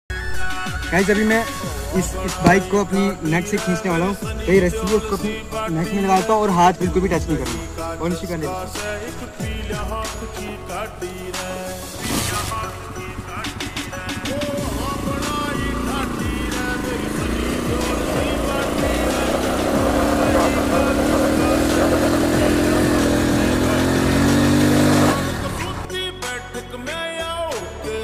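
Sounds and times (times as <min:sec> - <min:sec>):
background music: 0:00.1 - 0:28.0
motorcycle engine revving hard: 0:12.0 - 0:25.9.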